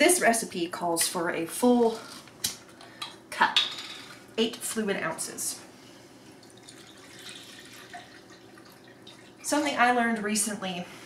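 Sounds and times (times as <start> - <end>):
liquid pouring into a cup: 6.4 - 9.5.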